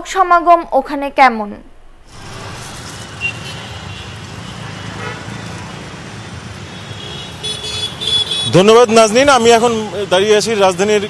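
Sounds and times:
rumble of road traffic: 0:02.0 - 0:11.0.

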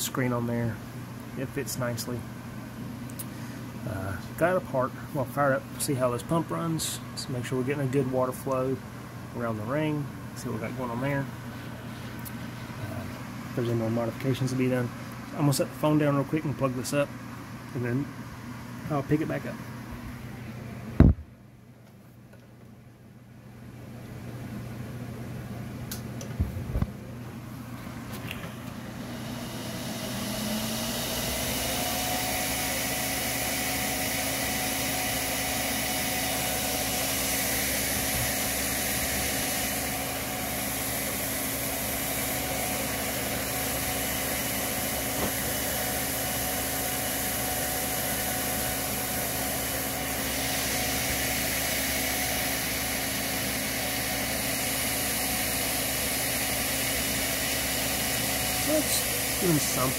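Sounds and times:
fan humming and whirring: 0:00.0 - 0:59.9.

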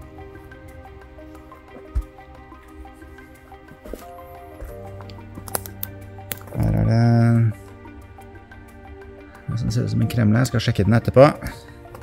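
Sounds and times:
background music with sustained notes: 0:00.0 - 0:12.0
man's voice: 0:09.5 - 0:11.6.

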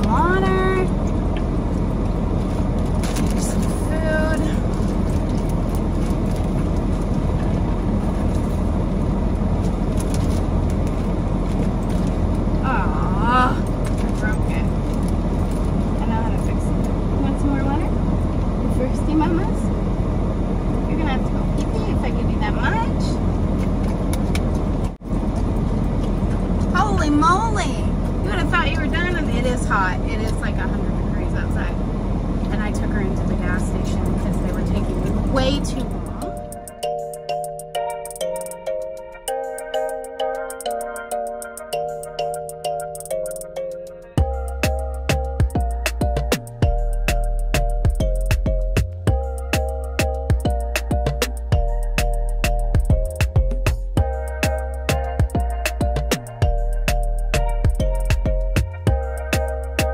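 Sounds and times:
vehicle cabin rumble and hiss: 0:00.0 - 0:38.7, 0:39.3 - 0:59.9.

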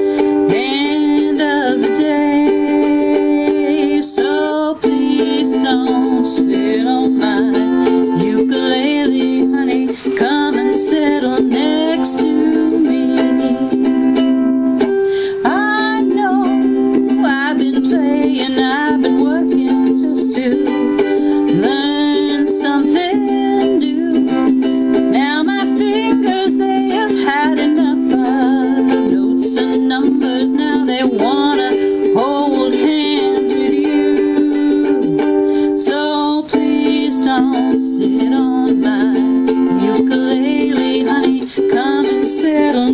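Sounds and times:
ukulele strumming chords: 0:00.0 - 0:42.9
woman singing: 0:00.0 - 0:42.9.

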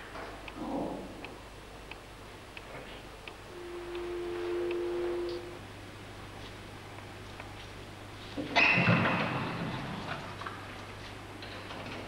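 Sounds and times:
chord of pure tones: 0:03.4 - 0:06.1.

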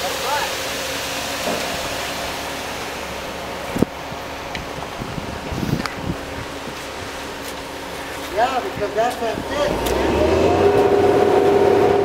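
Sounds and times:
mixer truck humming: 0:00.0 - 0:12.0.

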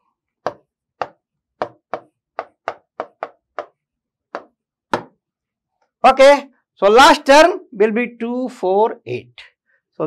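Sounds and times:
pen tapping on touchscreen: 0:00.4 - 0:03.8, 0:04.4 - 0:05.2.

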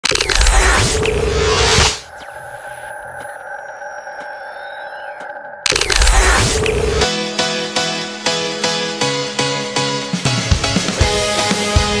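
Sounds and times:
faint gliding whistles: 0:02.0 - 0:06.8.

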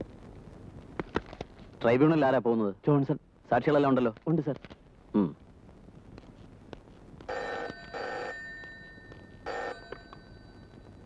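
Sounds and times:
desk telephone ringing: 0:07.3 - 0:11.0.

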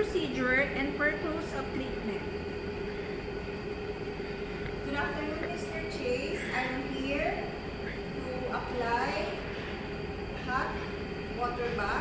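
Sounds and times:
faint constant tone: 0:00.0 - 0:12.0
low room hum: 0:00.0 - 0:12.0.

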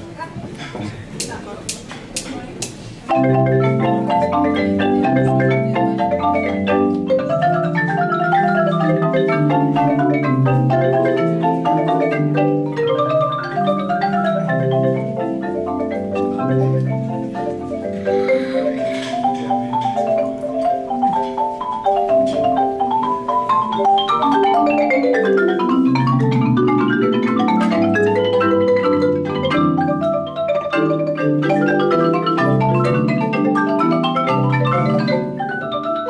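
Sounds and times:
marimba ensemble playing fast: 0:00.0 - 0:36.0.

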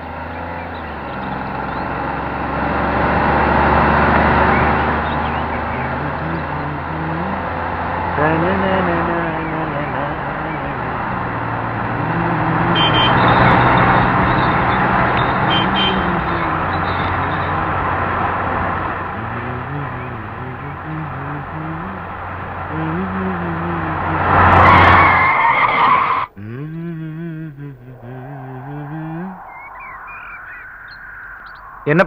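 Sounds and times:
car road and engine noise: 0:00.0 - 0:32.0
low wavering tone: 0:26.4 - 0:32.0.

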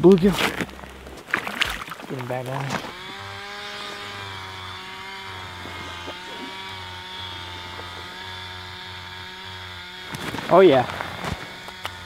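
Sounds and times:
low hum: 0:00.0 - 0:12.0
small engine running: 0:02.1 - 0:12.0.

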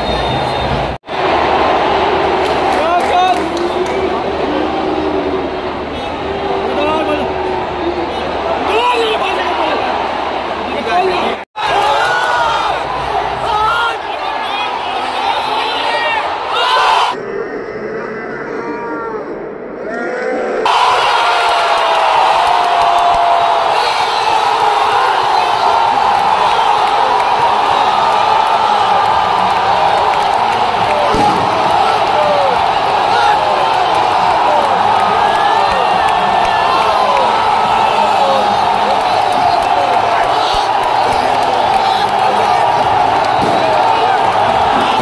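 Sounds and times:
stadium crowd cheering: 0:00.0 - 0:17.2, 0:20.5 - 0:45.0.

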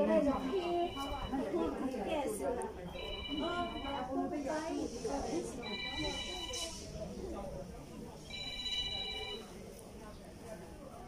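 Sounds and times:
low background voices: 0:00.0 - 0:11.0
high steady ringing tone: 0:00.2 - 0:01.6, 0:02.9 - 0:04.3, 0:05.6 - 0:06.8, 0:08.2 - 0:09.5.

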